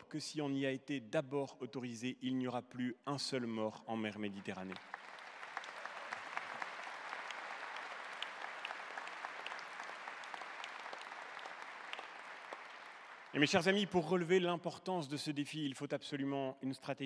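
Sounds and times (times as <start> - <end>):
audience applauding: 4.4 - 14.0.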